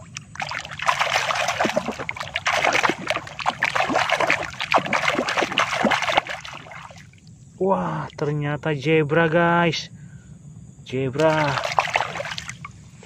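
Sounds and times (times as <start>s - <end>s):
water splashing and sloshing: 0.0s - 7.4s, 11.2s - 13.0s.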